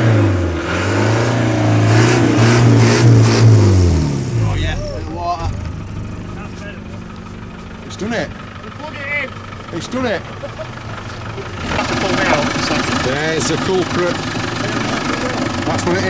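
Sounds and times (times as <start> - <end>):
diesel engine revving and idling: 0.0 - 16.0.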